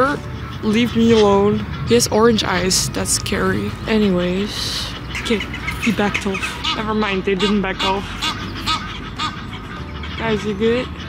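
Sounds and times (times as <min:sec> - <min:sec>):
goose honking: 0:00.0 - 0:11.0
soft background music: 0:00.0 - 0:11.0.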